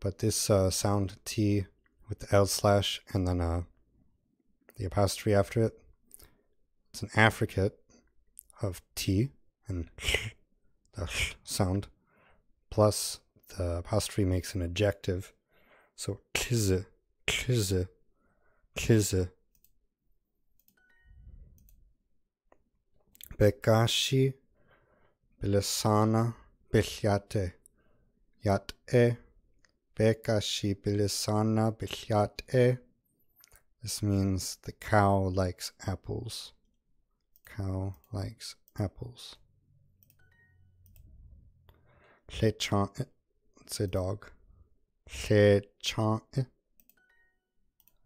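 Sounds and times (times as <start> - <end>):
computer mouse clicks: 20.6 - 21.8, 40.0 - 41.8, 46.8 - 48.0.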